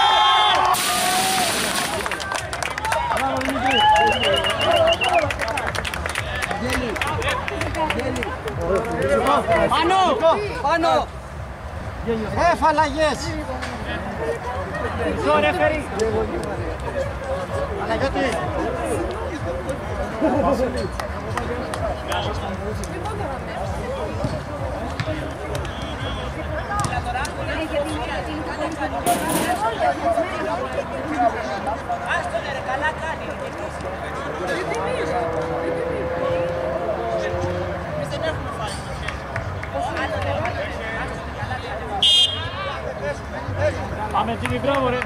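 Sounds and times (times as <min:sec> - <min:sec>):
people calling out and chattering: 0:00.0 - 0:45.0.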